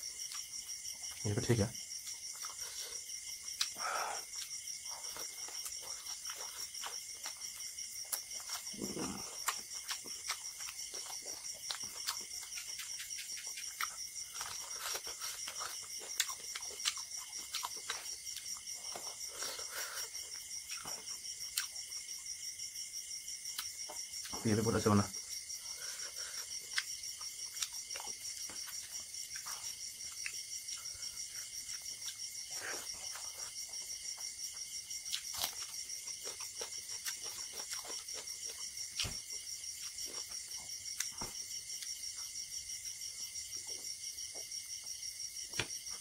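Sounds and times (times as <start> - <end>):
crickets chirping: 0.0 - 46.0
wet chewing: 1.9 - 22.0, 25.7 - 42.0.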